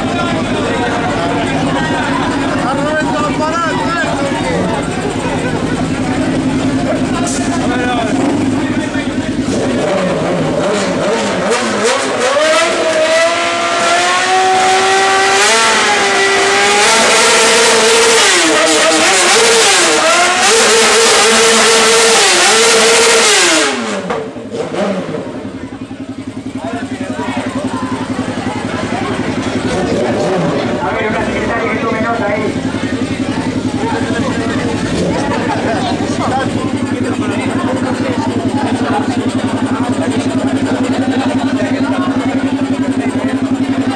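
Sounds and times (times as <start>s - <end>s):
motorcycle engine revving: 0.0s - 43.9s.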